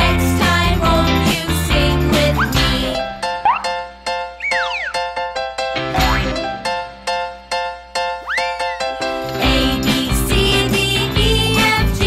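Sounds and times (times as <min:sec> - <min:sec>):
bouncy children's music: 0:00.0 - 0:12.0
cartoon boing effect: 0:03.4 - 0:03.8, 0:04.4 - 0:05.1, 0:05.9 - 0:06.5, 0:08.3 - 0:08.9.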